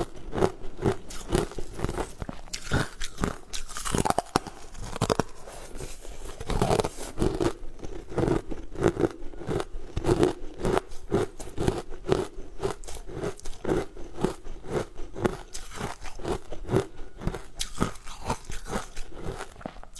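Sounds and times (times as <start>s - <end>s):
person chewing candy: 0.0s - 19.9s.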